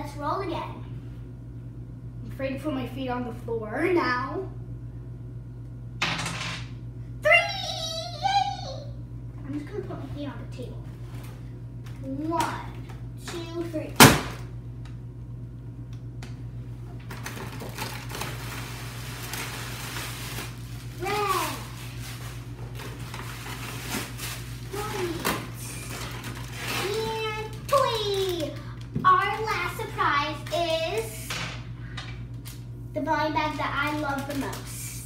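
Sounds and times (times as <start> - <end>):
paper rustling and crinkling: 17.1 - 28.6, 33.8 - 34.8.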